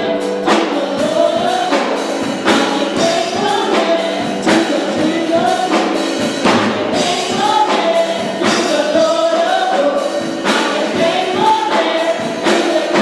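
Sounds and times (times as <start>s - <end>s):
choir singing gospel music: 0.0s - 13.0s.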